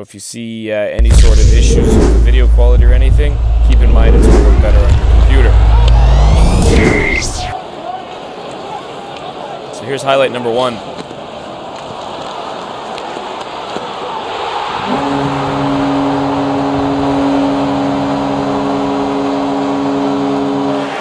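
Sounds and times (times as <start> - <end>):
goal horn blast: 1.0 - 7.6, 14.8 - 21.0
arena crowd cheering: 3.3 - 21.0.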